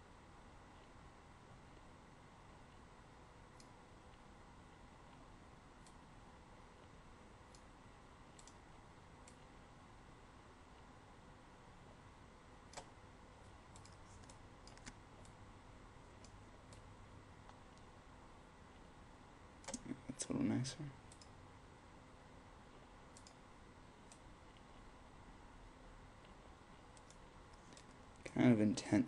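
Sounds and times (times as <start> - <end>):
faint room hiss: 0.0 - 29.0
computer mouse clicks: 3.6 - 4.2, 5.8 - 6.0, 8.3 - 8.6, 9.2 - 9.5, 12.7 - 13.0, 13.7 - 15.4, 16.2 - 17.9, 19.6 - 20.0, 21.1 - 21.4, 23.1 - 23.4, 24.1 - 24.8, 26.2 - 28.0.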